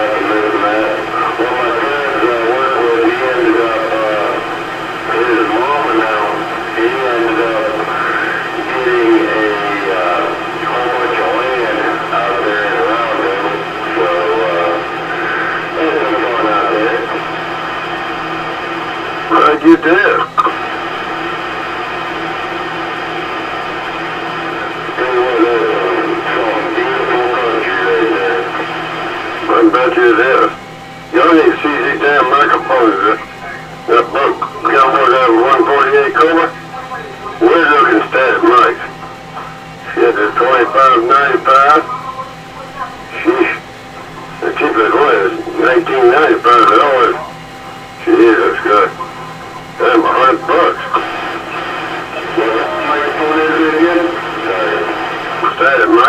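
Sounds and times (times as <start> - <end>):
garbled voices over radio: 0.0 - 17.2, 19.3 - 20.6, 24.8 - 28.8, 29.4 - 47.4, 48.0 - 56.0
radio static hiss: 0.0 - 56.0.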